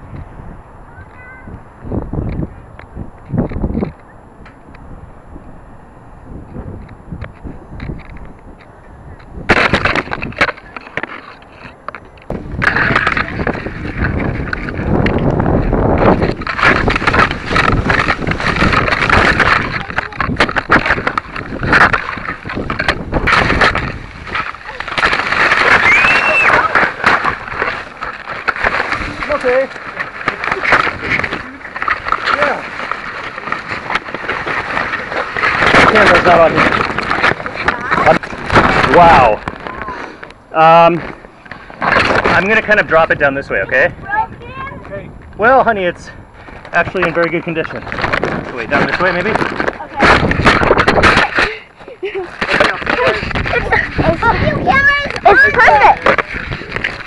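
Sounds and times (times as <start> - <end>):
crackling rustle with sharp snaps: 1.0 - 4.9, 6.5 - 57.0
leaves and twigs rustling: 6.6 - 45.3, 46.2 - 57.0.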